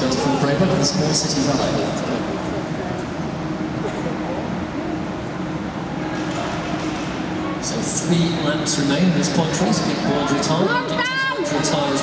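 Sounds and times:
reverberant hall noise: 0:00.0 - 0:12.0.

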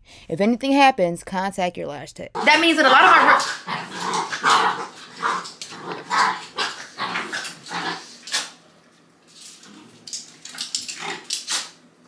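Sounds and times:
dogs growling and yelping: 0:02.4 - 0:08.6, 0:09.4 - 0:11.8.

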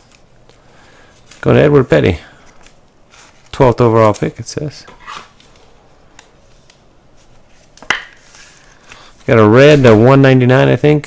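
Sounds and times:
cards rustling against sleeves: 0:00.0 - 0:10.8.

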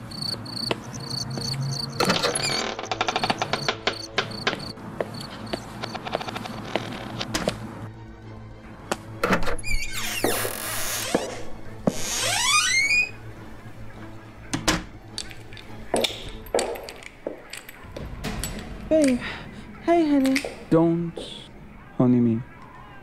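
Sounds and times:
door hinge squeaking: 0:02.0 - 0:04.8, 0:09.3 - 0:13.2
wooden door creaking: 0:02.0 - 0:04.8, 0:09.2 - 0:13.2
sharp hits: 0:17.8 - 0:20.8
steady low drone: 0:17.8 - 0:20.8.

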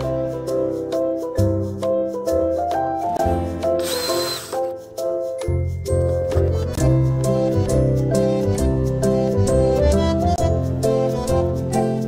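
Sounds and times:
instrumental music: 0:00.0 - 0:12.0.

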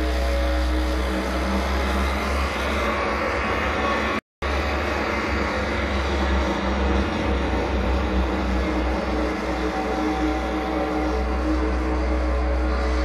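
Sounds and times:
distorted noise wall: 0:00.0 - 0:13.0
low rumbling drone: 0:00.0 - 0:13.0
midrange droning tones: 0:00.0 - 0:13.0.

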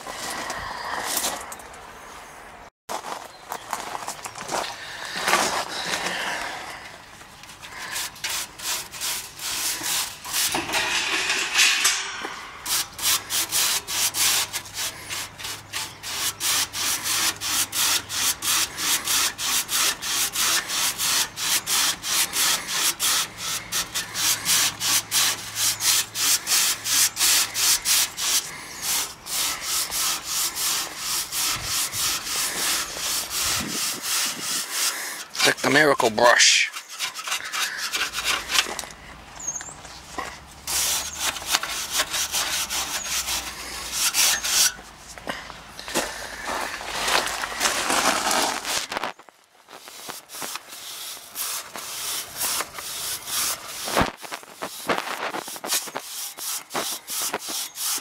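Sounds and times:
brush scrubbing metal fins: 0:07.5 - 0:38.8, 0:40.7 - 0:45.2, 0:49.7 - 0:58.0.

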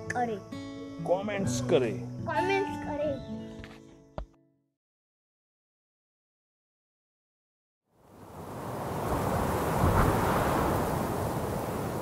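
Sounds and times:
rushing noise: 0:08.4 - 0:12.0.

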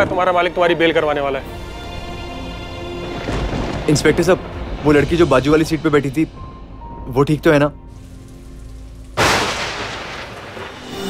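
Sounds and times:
loud dramatic impact boom: 0:09.2 - 0:11.0.

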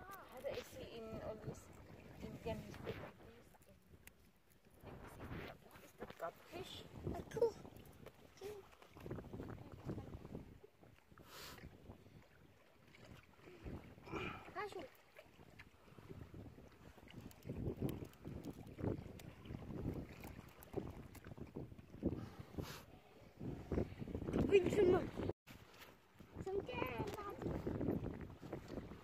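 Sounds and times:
wind buffeting microphone: 0:00.0 - 0:03.3, 0:06.5 - 0:10.6, 0:15.3 - 0:25.4, 0:26.2 - 0:29.0.

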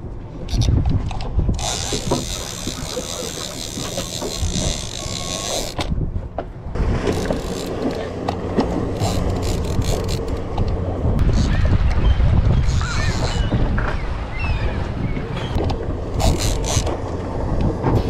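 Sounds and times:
reel gears clicking: 0:01.5 - 0:05.9, 0:07.0 - 0:10.8, 0:15.6 - 0:17.1
fishing reel drag buzzing: 0:01.6 - 0:05.9, 0:07.1 - 0:08.1, 0:08.9 - 0:10.5, 0:16.1 - 0:17.0.

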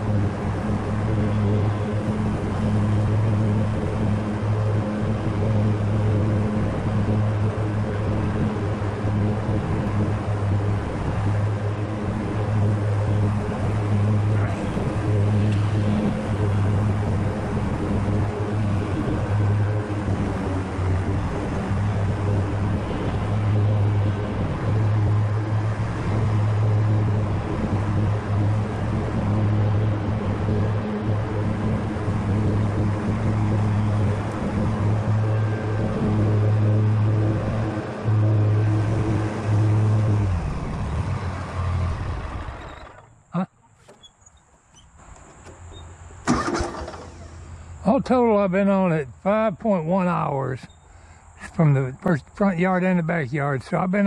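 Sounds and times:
riding mower engine drone: 0:00.0 - 0:54.0.

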